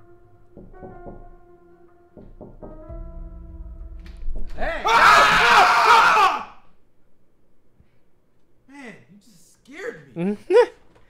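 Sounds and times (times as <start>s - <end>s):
man screaming in fright: 4.6s - 6.6s.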